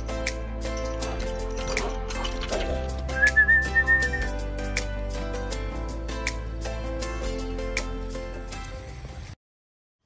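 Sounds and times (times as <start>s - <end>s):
background music with steady beat: 0.0s - 9.3s
high whistle: 3.2s - 4.3s.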